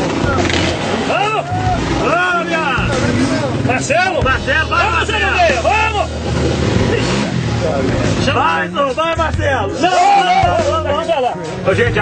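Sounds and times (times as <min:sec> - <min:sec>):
motorcycle engines running: 0:00.0 - 0:12.0
people talking and calling out: 0:00.0 - 0:12.0.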